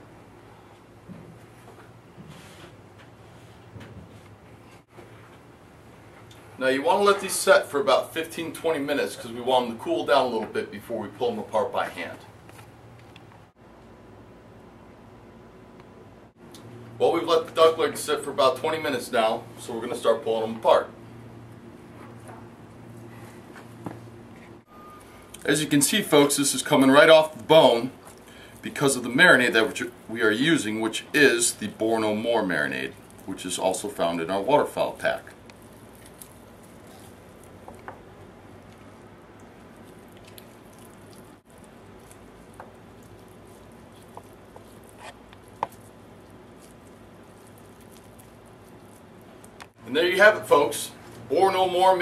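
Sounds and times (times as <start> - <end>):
low room hum: 0.0 - 52.0
hands pulling meat apart: 32.4 - 38.0, 38.6 - 49.8
small clicks of meat and bone: 47.5 - 49.8.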